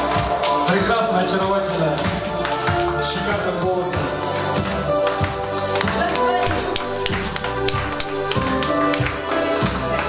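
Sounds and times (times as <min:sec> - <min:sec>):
audience clapping along: 0:00.0 - 0:10.0
upbeat pop song: 0:00.0 - 0:10.0.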